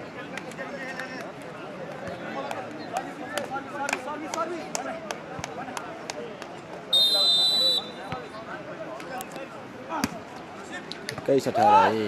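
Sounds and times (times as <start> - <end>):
crowd chatter: 0.0 - 12.0
referee's whistle: 6.9 - 8.1.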